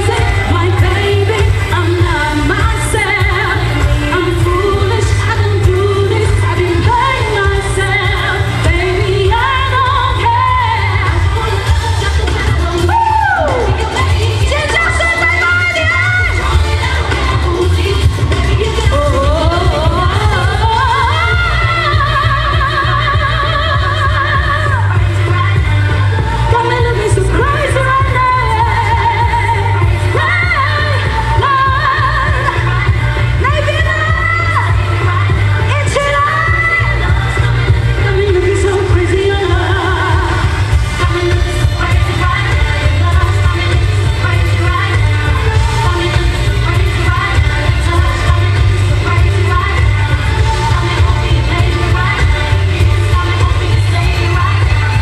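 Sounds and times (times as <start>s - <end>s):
amplified band with heavy bass: 0.0s - 55.0s
woman singing into microphone: 0.0s - 55.0s.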